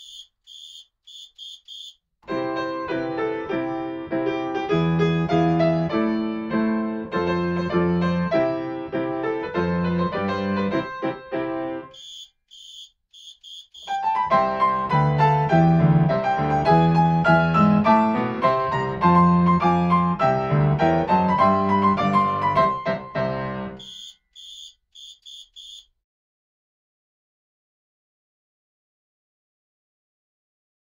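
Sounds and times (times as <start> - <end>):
short high clicks: 0.0 - 2.0, 11.9 - 14.0.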